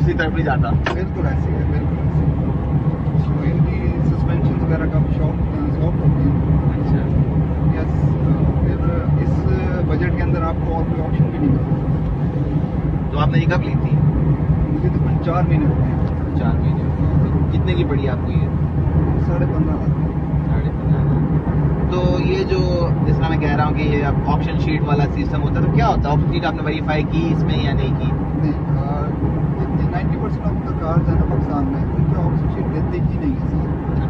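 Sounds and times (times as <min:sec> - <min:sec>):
car engine and road drone: 0:00.0 - 0:34.0.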